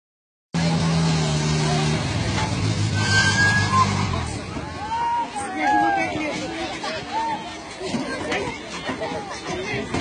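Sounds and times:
jeep engine running: 0.6 - 5.0
crowd voices: 0.6 - 10.0.

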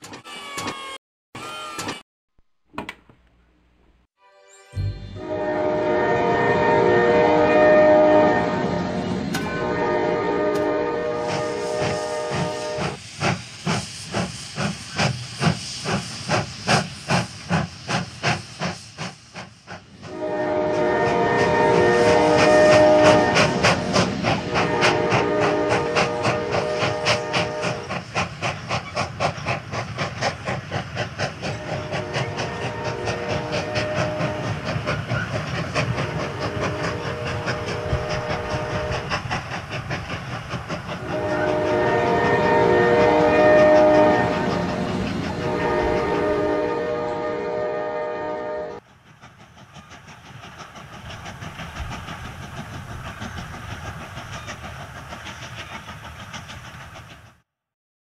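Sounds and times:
steam whistle: 4.8 - 13.0, 20.0 - 28.0, 31.5 - 34.8, 35.8 - 39.2, 41.0 - 48.8
steam locomotive chuffing: 4.8 - 57.5
train wheels clickety-clack: 9.1 - 57.5.

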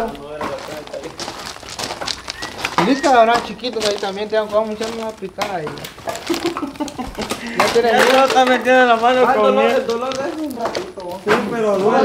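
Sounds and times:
firewood logs knocking: 0.0 - 11.9
distant people talking: 0.0 - 12.0.

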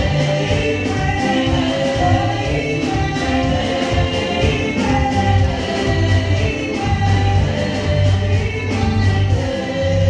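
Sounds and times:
group singing gospel: 0.0 - 10.0
keyboard accompaniment: 0.0 - 10.0.

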